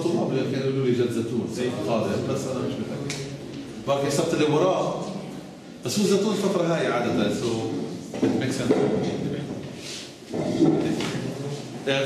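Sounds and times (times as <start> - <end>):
man speaking: 0.0 - 5.2, 5.8 - 9.6.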